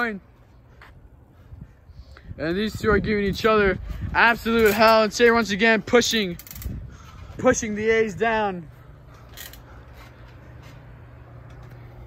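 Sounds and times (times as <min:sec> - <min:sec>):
steady low rumble: 0:00.2 - 0:12.0
trampoline springs creaking: 0:04.2 - 0:07.5, 0:09.0 - 0:12.0.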